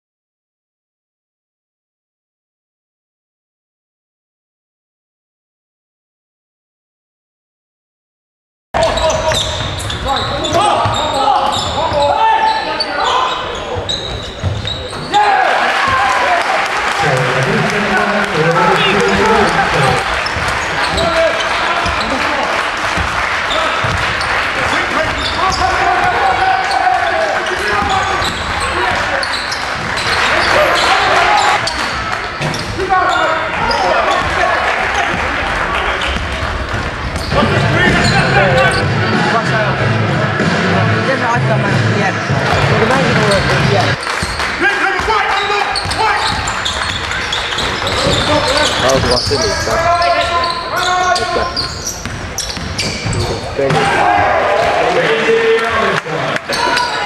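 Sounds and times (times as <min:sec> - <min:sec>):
indistinct voices: 0:08.8 - 0:22.6, 0:24.5 - 0:44.0, 0:44.8 - 0:57.0
basketball bouncing on wooden court: 0:08.9 - 0:12.0, 0:13.3 - 0:15.1, 0:18.6 - 0:22.2, 0:23.0 - 0:26.5, 0:27.1 - 0:32.9, 0:33.5 - 0:38.3, 0:45.7 - 0:53.9.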